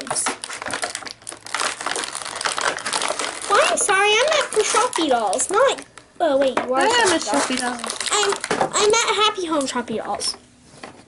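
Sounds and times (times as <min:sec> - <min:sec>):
toy packaging crinkling: 0:00.0 - 0:06.1, 0:06.8 - 0:09.8.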